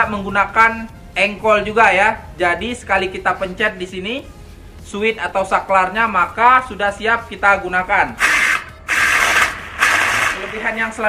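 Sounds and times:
grass trimmer motor whirring: 8.2s - 10.8s.

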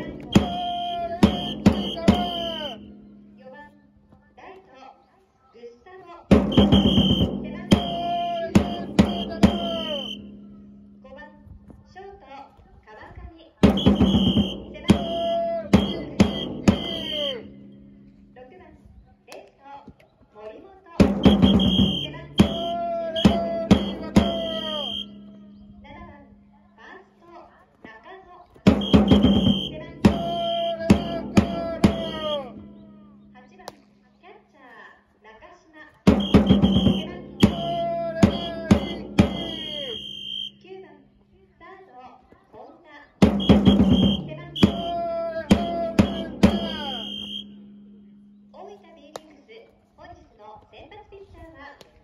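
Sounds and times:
band music: 0.0s - 2.8s, 7.7s - 10.2s, 36.2s - 40.1s, 43.4s - 47.4s
drum hits: 0.0s - 2.8s, 6.3s - 10.2s, 13.6s - 17.6s, 21.0s - 25.1s, 28.7s - 32.7s, 36.1s - 40.4s, 43.2s - 47.9s
shrill high tone: 0.0s - 3.0s, 6.6s - 10.7s, 13.8s - 17.6s, 21.3s - 25.6s, 28.8s - 33.1s, 36.2s - 40.6s, 43.5s - 47.7s
high whistle-like notes: 0.0s - 3.3s, 6.5s - 10.6s, 13.7s - 18.0s, 21.2s - 25.7s, 28.8s - 33.1s, 36.1s - 40.7s, 43.3s - 48.6s.

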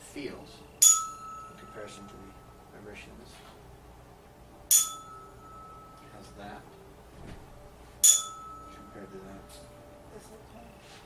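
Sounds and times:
tuning fork ringing: 0.2s - 3.2s, 4.5s - 7.0s, 7.6s - 10.8s.

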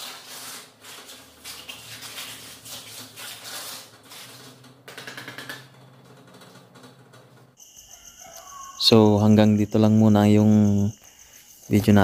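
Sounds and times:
trowel scraping wet mortar: 0.0s - 4.6s.

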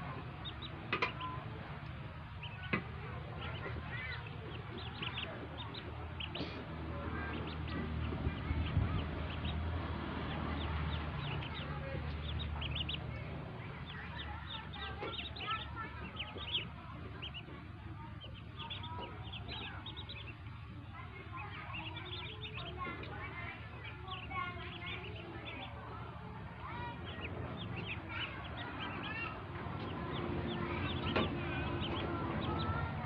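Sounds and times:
ducklings peeping: 0.0s - 33.0s
low steady rumble: 0.0s - 33.0s.

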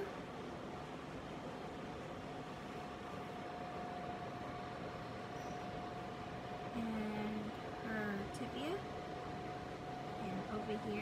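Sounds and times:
faint hum-like tone: 0.0s - 11.0s
steady background hiss: 0.0s - 11.0s.

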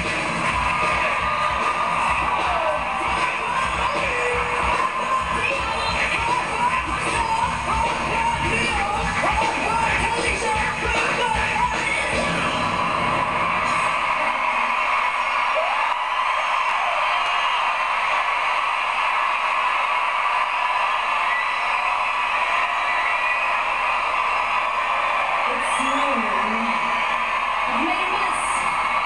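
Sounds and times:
live pop band with vocals: 0.0s - 13.8s
crowd cheering and screaming: 0.0s - 29.0s
whoops: 0.5s - 6.0s, 12.5s - 25.9s.

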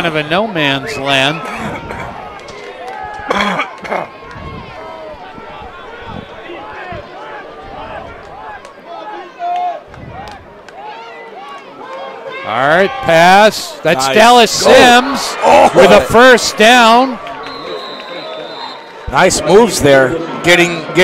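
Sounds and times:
crowd shouting and chattering: 0.0s - 21.0s
loud shout: 1.3s - 21.0s.

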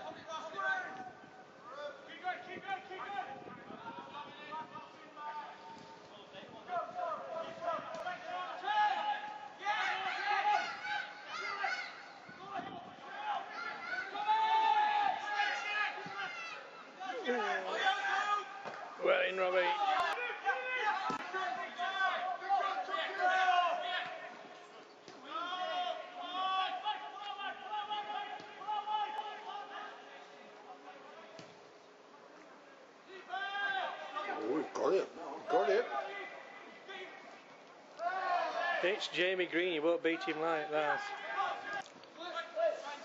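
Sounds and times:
men calling and shouting: 0.0s - 31.7s, 32.8s - 43.0s.

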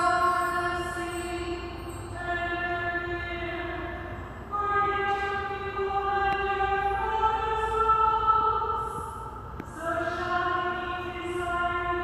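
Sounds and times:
slow church hymn music: 0.0s - 12.0s.

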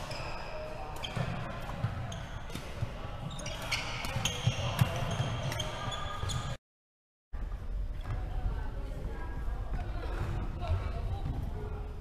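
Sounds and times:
sneakers squeaking on wooden court: 0.0s - 6.6s.

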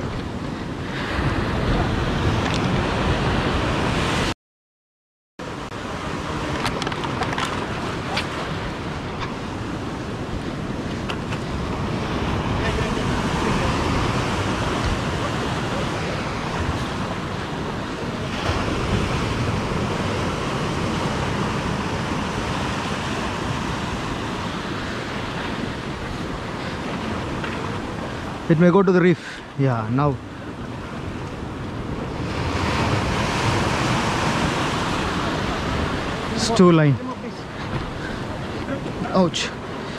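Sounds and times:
wind buffeting microphone: 0.0s - 4.3s, 5.5s - 28.5s
surf breaking on rocks: 5.8s - 39.9s.

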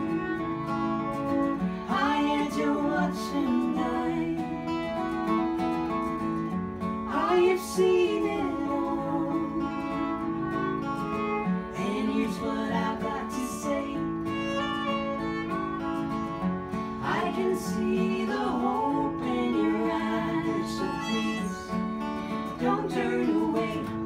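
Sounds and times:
person singing: 0.0s - 5.6s, 7.1s - 24.0s
acoustic guitars: 0.0s - 24.0s
fiddle: 0.0s - 24.0s.

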